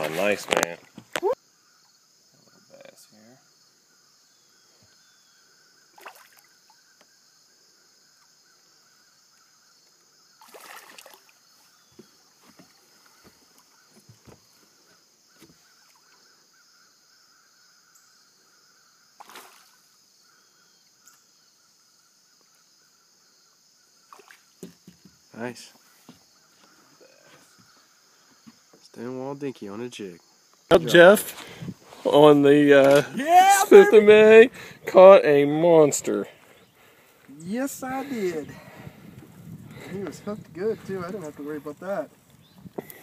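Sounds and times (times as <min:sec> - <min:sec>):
knocks and water splashes: 0:10.4 - 0:11.2, 0:24.1 - 0:25.2
faint high hiss: 0:26.6 - 0:39.0, 0:39.7 - 0:43.0.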